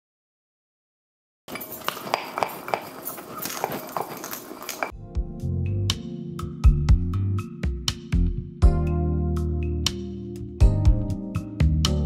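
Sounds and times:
glass clinking: 1.5 - 4.9
background music with beat: 5.0 - 12.0.

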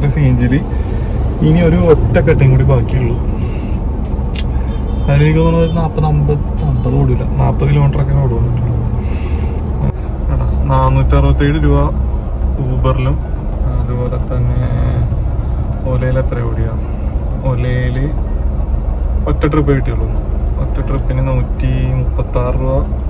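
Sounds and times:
man talking: 0.0 - 0.7, 1.3 - 3.4, 4.4 - 8.8, 9.8 - 15.2, 17.4 - 18.2
low hum: 0.0 - 23.0.

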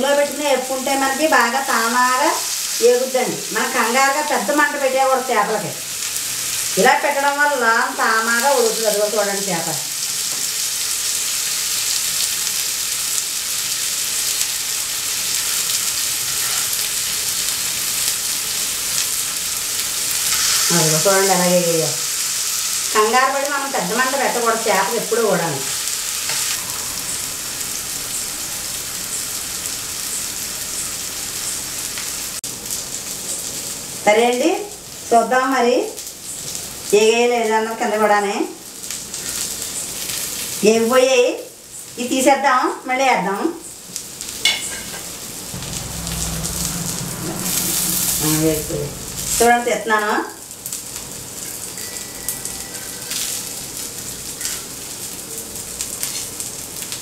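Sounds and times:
fish frying in oil: 0.0 - 57.0.

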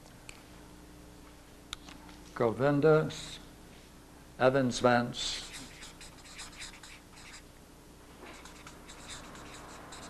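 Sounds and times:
marker scratching on paper: 5.3 - 7.5, 8.3 - 10.0.

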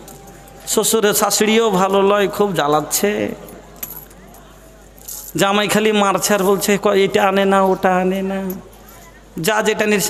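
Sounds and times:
man speaking over public address: 0.6 - 3.6, 5.3 - 10.0.

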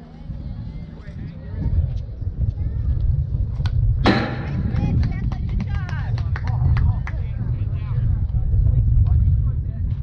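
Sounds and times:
low wind rumble on microphone: 0.0 - 10.0.

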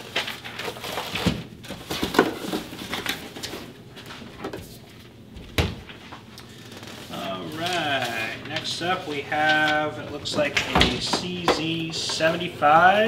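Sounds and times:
paper rustling: 0.0 - 5.1, 5.8 - 13.0.

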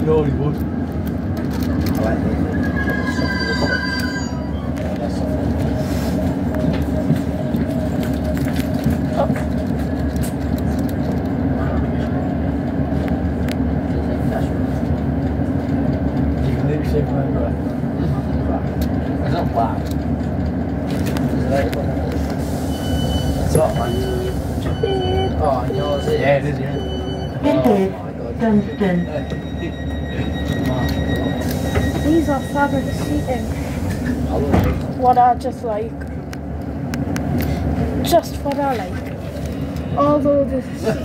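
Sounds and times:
diesel engine drone: 0.0 - 41.0
train wheels rumbling and clicking: 0.0 - 41.0
high-pitched wheel squeal: 2.4 - 5.3, 22.6 - 34.0.

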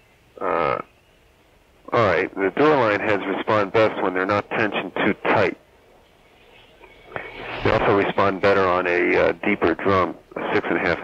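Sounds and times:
man speaking over telephone: 0.4 - 0.8, 1.9 - 5.6, 7.2 - 11.0.

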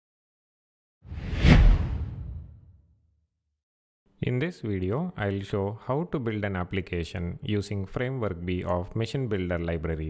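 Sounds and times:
whoosh: 1.1 - 2.7
deep low boom: 1.2 - 2.6.

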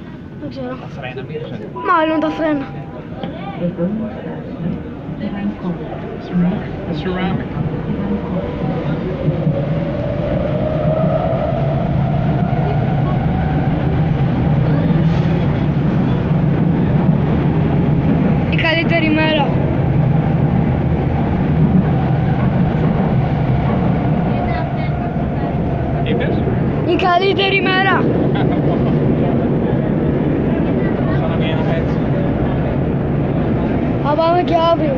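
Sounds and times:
train wheels rumbling on rails: 0.0 - 34.9
train whine rising in pitch: 5.3 - 16.2.

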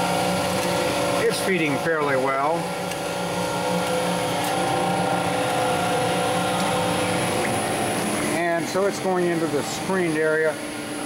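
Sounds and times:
screw press machine hum: 0.0 - 11.0.

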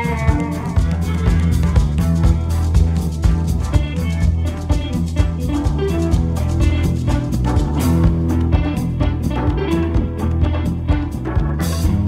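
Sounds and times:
drum kit and bass beat: 0.0 - 12.0.

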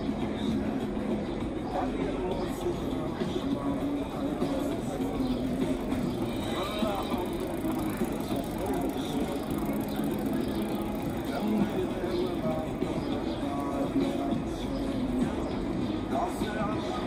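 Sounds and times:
indistinct voices: 0.0 - 17.0
traffic rumbling: 2.6 - 16.2.

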